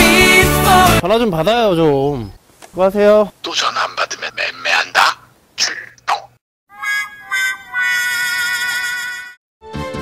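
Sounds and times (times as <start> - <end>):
person speaking: 1.2 - 6.4
steady held tone: 6.7 - 9.4.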